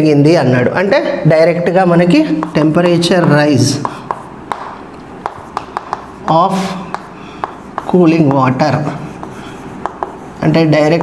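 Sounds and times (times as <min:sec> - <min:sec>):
chalk tapping on chalkboard: 0:02.2 - 0:11.0.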